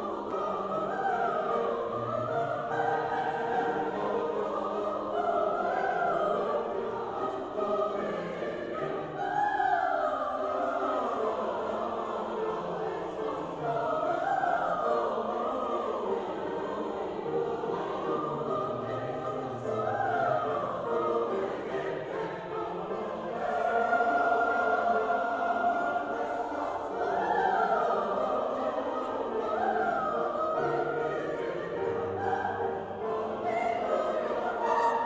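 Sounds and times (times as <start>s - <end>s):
mixed choir singing: 0.0s - 35.0s.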